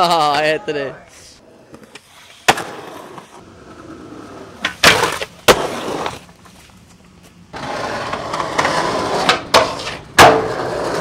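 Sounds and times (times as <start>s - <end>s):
skateboard wheels rolling on concrete: 1.4s - 11.0s.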